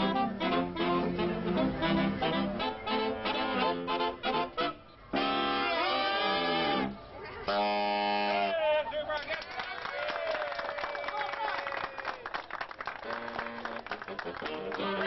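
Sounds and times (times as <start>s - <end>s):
saxophone chords: 0.0s - 8.6s, 13.0s - 15.0s
scattered saxophone notes: 0.0s - 8.6s, 12.9s - 15.0s.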